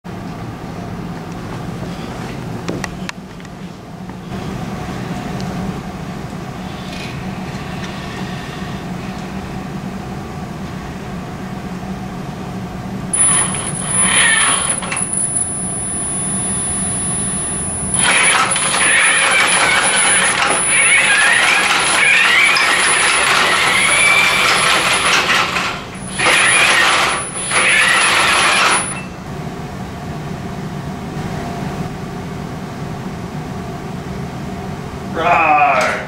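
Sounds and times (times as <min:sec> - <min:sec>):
quiet steady hum: 0:00.6 - 0:18.0
robot drive motors whining: 0:13.1 - 0:29.1.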